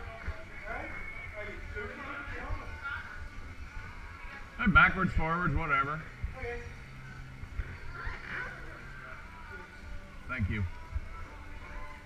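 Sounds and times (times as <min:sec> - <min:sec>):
faint distant voices: 0:00.0 - 0:12.0
steady low hum: 0:00.0 - 0:12.0.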